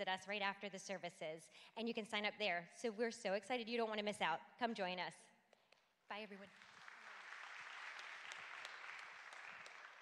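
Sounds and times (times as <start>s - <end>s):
congregation clapping: 6.4s - 10.0s.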